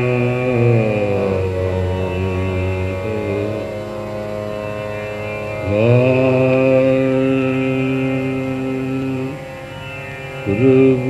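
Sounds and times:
man singing classical: 0.0s - 11.0s
tanpura drone: 0.0s - 11.0s.

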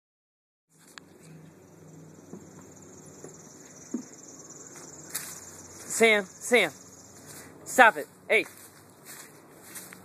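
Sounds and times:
steady high hiss: 1.6s - 8.0s
footsteps on grass: 4.7s - 10.0s.

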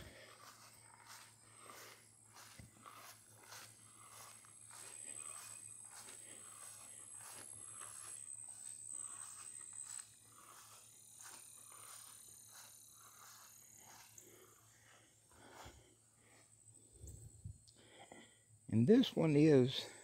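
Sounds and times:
soft footsteps on grass: 0.0s - 16.6s
thin high whine: 6.6s - 14.7s.

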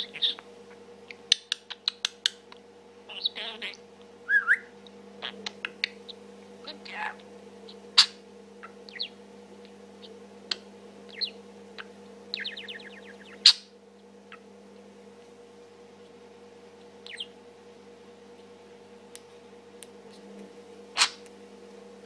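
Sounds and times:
budgerigar chattering: 0.0s - 0.4s, 3.1s - 3.8s
steady low hum: 0.0s - 22.0s.

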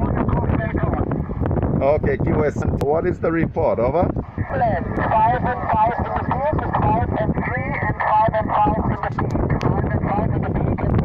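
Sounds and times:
radio band noise: 0.0s - 1.0s, 4.2s - 11.0s
radio operator speech: 0.0s - 1.0s, 3.9s - 11.0s.

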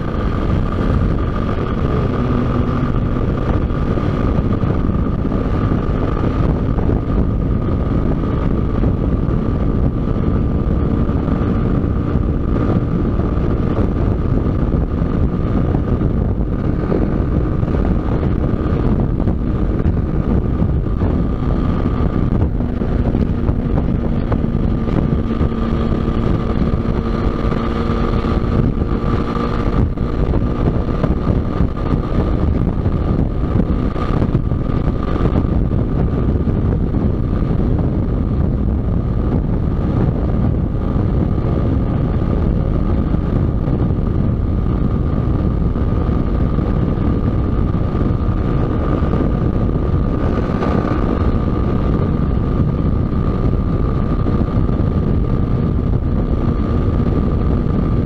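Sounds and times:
motorcycle engine running: 0.0s - 58.0s
wind rushing over microphone: 0.0s - 58.0s.

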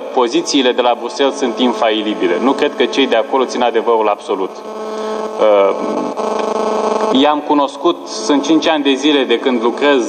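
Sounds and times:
man speaking into a microphone: 0.0s - 4.7s, 5.3s - 6.3s, 7.1s - 10.0s
man's drawn-out hesitation sound: 0.0s - 10.0s.

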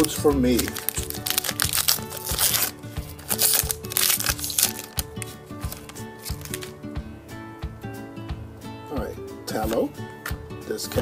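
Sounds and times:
foil wrapper tearing and crinkling: 0.0s - 6.8s
background music: 0.0s - 11.0s.

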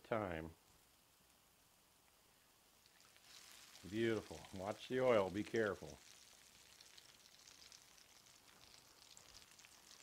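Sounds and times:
hot oil sizzling and crackling: 0.6s - 10.0s.

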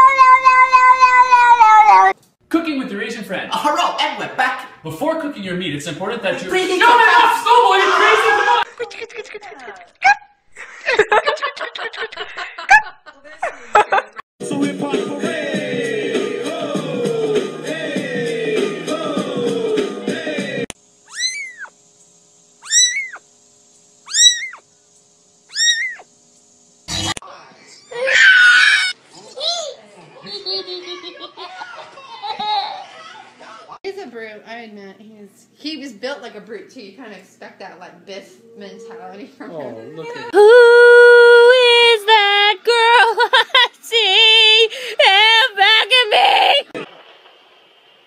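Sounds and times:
cat yowling: 0.0s - 2.2s, 21.1s - 21.8s, 22.6s - 23.2s, 24.1s - 24.6s, 25.5s - 26.1s, 28.0s - 29.0s
music: 14.4s - 20.7s, 38.2s - 40.0s
kitten meowing: 21.1s - 21.7s, 22.6s - 23.2s, 24.1s - 24.6s, 25.5s - 26.0s.

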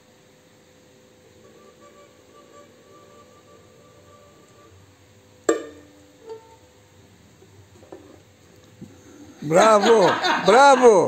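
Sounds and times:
bowed lyra held note: 5.5s - 6.7s.

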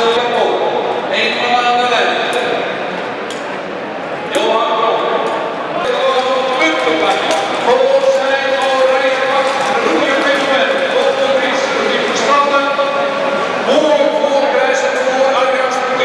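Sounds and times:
man's voice over loudspeakers: 0.0s - 2.7s, 4.3s - 16.0s.

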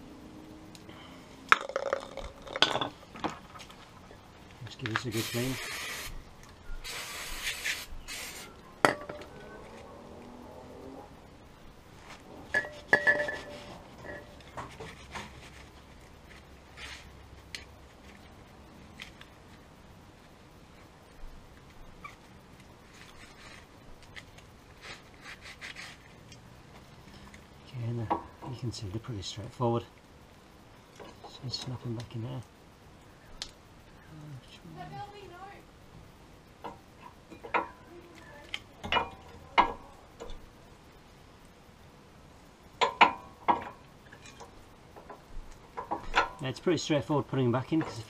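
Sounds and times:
aerosol spray hissing: 5.1s - 6.2s, 6.8s - 8.5s
hand rubbing metal: 24.8s - 26.2s.

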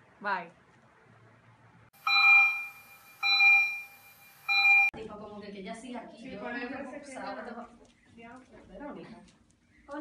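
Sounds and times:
electronic alarm beeps: 2.0s - 5.0s.

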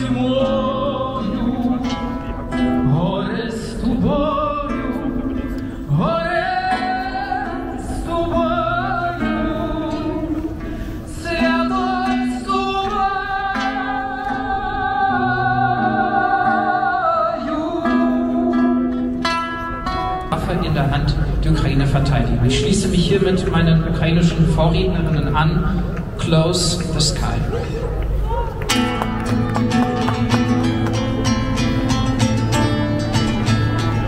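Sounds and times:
person singing with vibrato: 0.0s - 20.4s
plucked string notes: 11.5s - 27.9s, 28.7s - 34.0s
man speaking: 20.3s - 27.7s.

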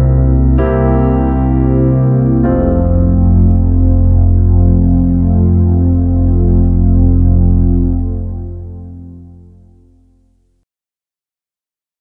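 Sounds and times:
electronic keyboard sustained chord: 0.0s - 10.5s.

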